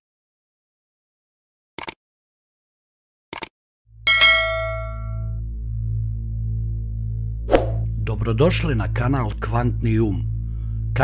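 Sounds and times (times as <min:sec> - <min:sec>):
low background music drone: 0:03.9 - 0:11.0
bright bell ding: 0:04.1 - 0:05.4.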